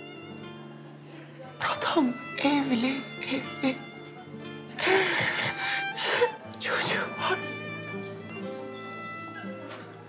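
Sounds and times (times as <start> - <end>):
held string notes: 0.0 - 10.0
woman sobbing: 4.8 - 6.4.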